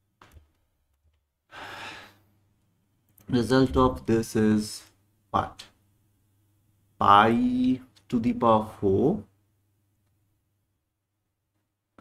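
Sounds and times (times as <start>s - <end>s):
person breathing out: 1.5s - 2.3s.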